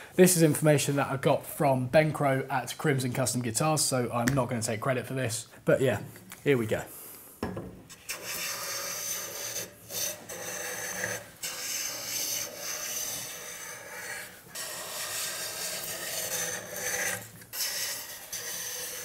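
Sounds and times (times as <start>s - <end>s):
bench plane shaving wood: 8.1s - 19.0s.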